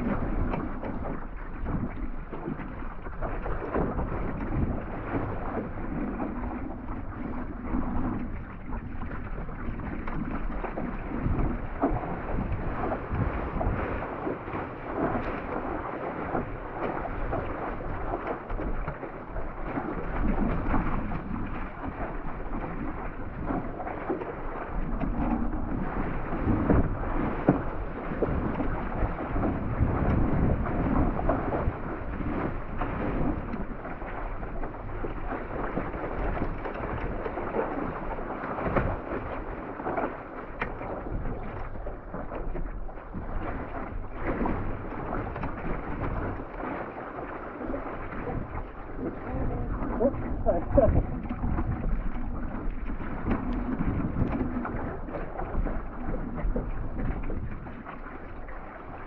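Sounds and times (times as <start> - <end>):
water rushing along a hull: 0.0 - 59.0
wind rumble on microphone: 0.0 - 59.0.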